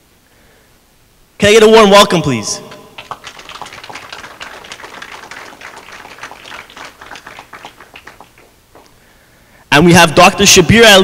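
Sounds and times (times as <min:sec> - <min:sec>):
audience applauding: 0:02.7 - 0:09.0.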